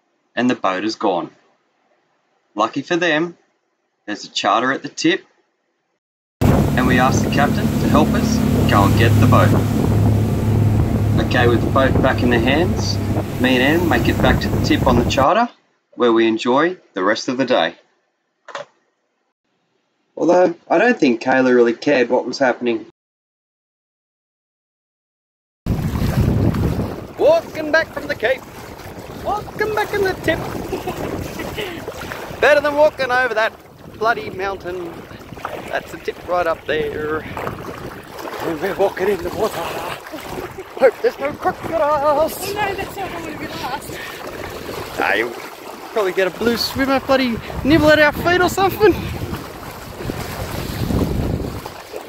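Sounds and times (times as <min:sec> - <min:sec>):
wind buffeting microphone: 0:06.4 - 0:15.2, 0:25.7 - 0:51.8
water splashing: 0:06.4 - 0:15.3, 0:25.7 - 0:52.0.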